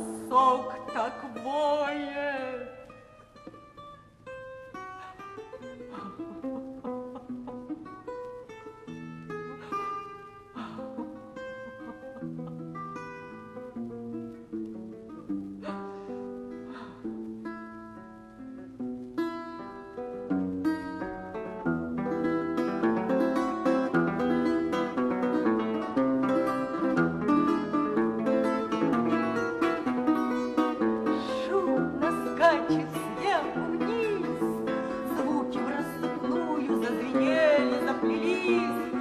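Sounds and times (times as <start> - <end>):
acoustic guitar playing: 0.0 - 39.0.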